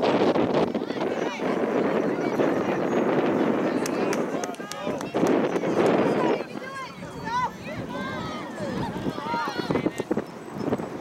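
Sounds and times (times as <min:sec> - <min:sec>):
players and spectators calling: 0:00.7 - 0:10.9.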